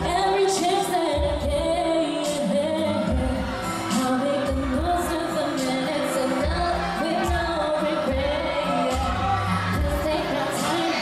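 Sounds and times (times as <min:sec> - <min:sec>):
pop backing track with bass beat: 0:00.0 - 0:11.0
woman singing into microphone: 0:00.0 - 0:11.0.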